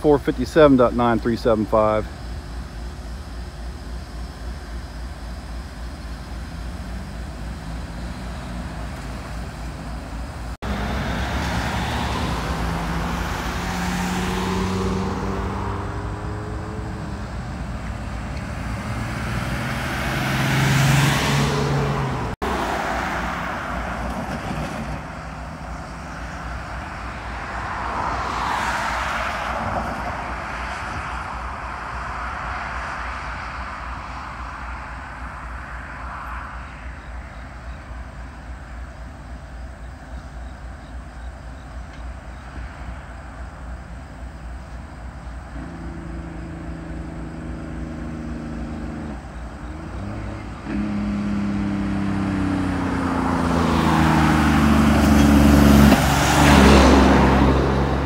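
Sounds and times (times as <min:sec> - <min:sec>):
diesel locomotive drone: 0:00.0 - 0:28.6, 0:29.4 - 0:58.0
road vehicles passing: 0:00.0 - 0:58.0.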